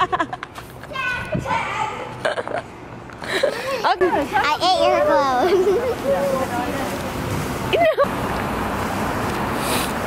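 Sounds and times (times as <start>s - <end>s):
children's vocal noises: 3.5s - 6.8s.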